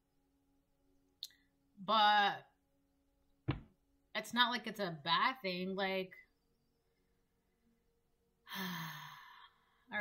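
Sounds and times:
woman sighing: 8.4 - 9.8.

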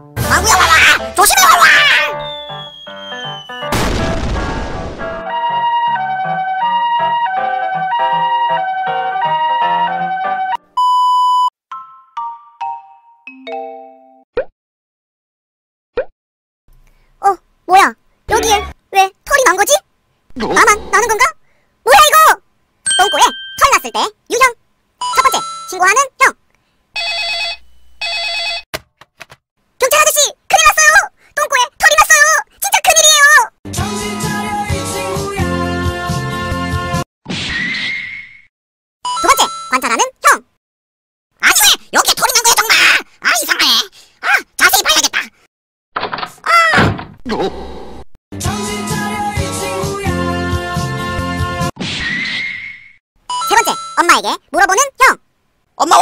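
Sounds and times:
cartoon background music: 0.0 - 10.8, 18.3 - 18.8, 48.4 - 51.7, 53.4 - 54.7
cartoon voice shouting: 0.3 - 2.2, 17.2 - 22.4, 29.8 - 33.5, 39.2 - 40.5, 41.4 - 45.4, 46.4 - 47.5, 53.4 - 55.2, 55.8 - 56.0
high whistling tone sliding down: 2.1 - 3.7
loud hit sound effect: 3.7 - 5.2
person speaking: 17.2 - 24.6
electronic telephone ring: 27.0 - 28.7.

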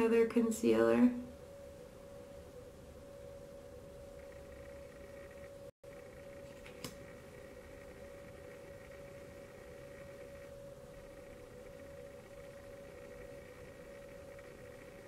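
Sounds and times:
faint electrical hum: 0.0 - 15.0.

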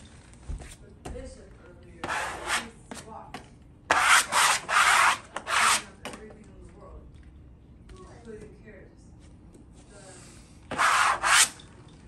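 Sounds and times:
plastic smoother rubbing wallpaper: 3.9 - 5.9, 10.7 - 11.6.

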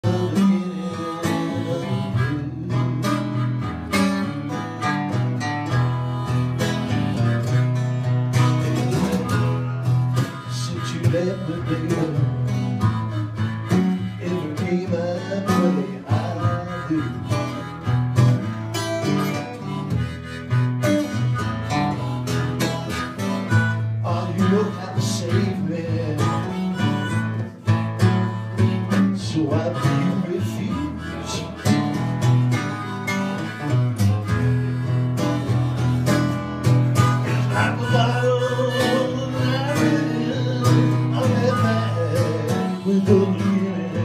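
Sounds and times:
acoustic guitar strumming: 0.0 - 44.0
harmonica wailing: 0.0 - 44.0.

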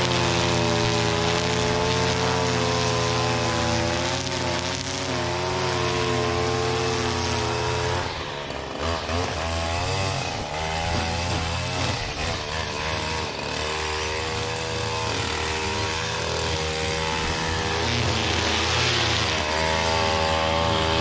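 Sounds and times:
line trimmer engine revving: 0.0 - 21.0.

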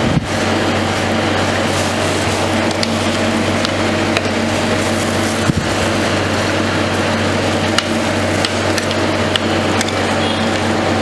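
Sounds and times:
freezing machine hum: 0.0 - 11.0.

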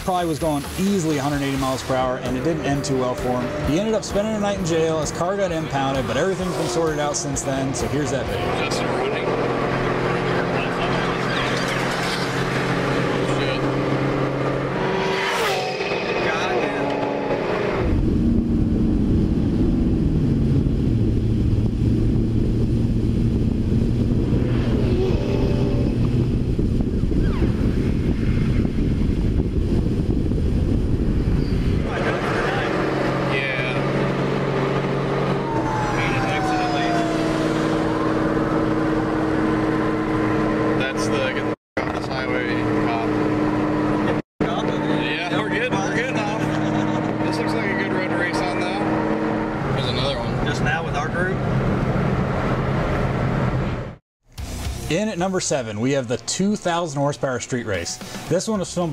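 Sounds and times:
car engine running: 0.0 - 28.1, 31.8 - 54.7
wind and road noise: 0.0 - 58.9
people talking in car: 0.1 - 13.8, 31.8 - 33.8, 44.0 - 48.9, 49.6 - 51.4.

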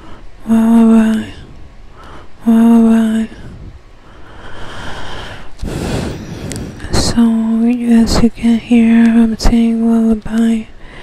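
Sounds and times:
soft exhale on microphone: 3.3 - 7.0
puff of air hitting microphone: 5.5 - 7.2.

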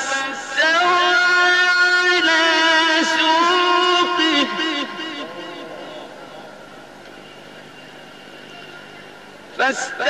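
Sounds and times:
reverberant voice reciting: 0.0 - 6.8, 9.6 - 10.0.

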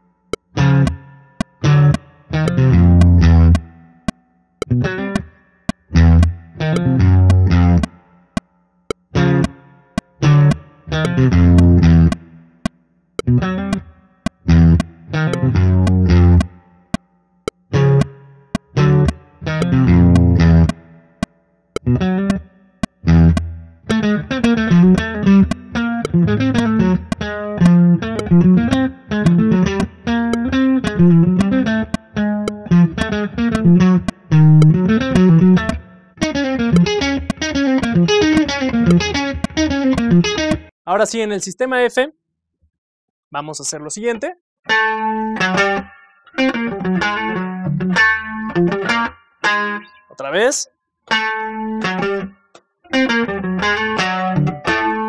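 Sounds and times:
metronome click: 0.3 - 40.7
electric guitar jazz melody: 21.9 - 40.6, 44.7 - 49.9, 52.9 - 55.0.

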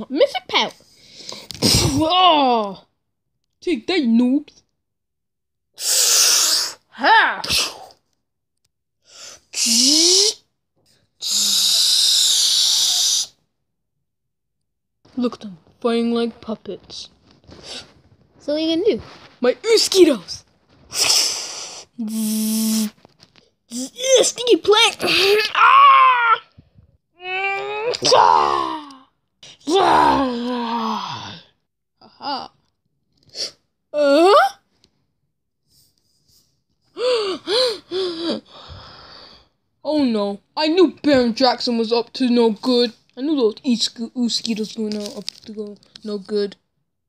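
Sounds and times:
child's long hissing shhh: 5.8 - 8.0, 9.1 - 10.4, 11.2 - 13.4, 20.9 - 23.0
breathy puff: 20.9 - 23.0.

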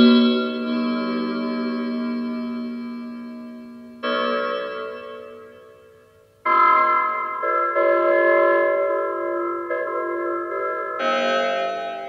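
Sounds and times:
electronic tone chord: 0.0 - 12.0.

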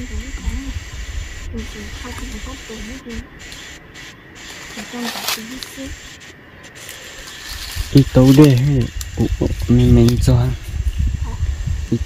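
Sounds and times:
woman talking loudly: 0.0 - 0.8, 1.5 - 3.3, 4.8 - 6.0
background hiss: 0.0 - 12.0
faint voices: 0.0 - 12.0.

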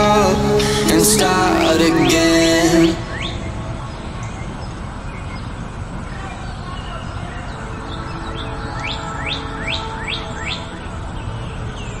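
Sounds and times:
bird chirping: 0.0 - 12.0
steady background noise: 0.0 - 12.0.

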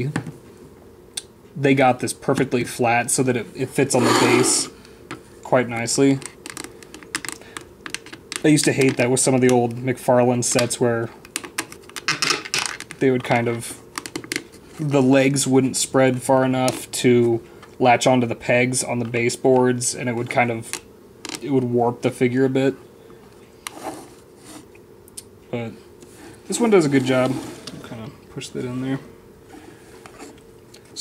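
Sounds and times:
plastic rubbing and scraping: 26.5 - 28.0.

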